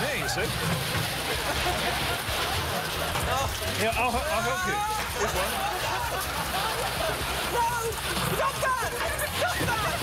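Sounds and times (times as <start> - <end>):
people shouting and laughing: 1.2 - 10.0.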